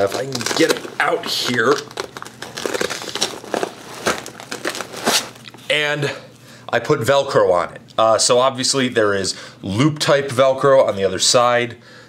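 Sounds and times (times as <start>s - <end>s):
velcro ripping apart: 0.0s - 5.5s.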